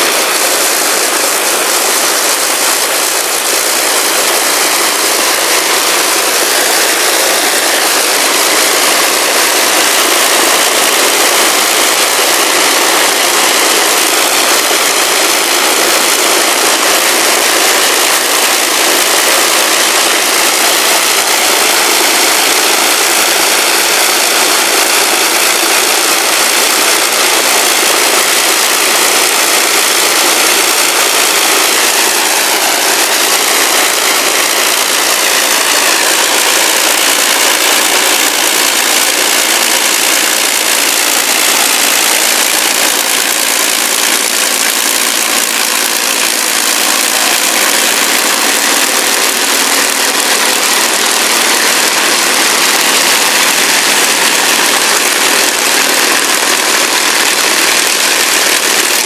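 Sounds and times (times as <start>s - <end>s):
aircraft piston engines droning: 0.0s - 39.6s.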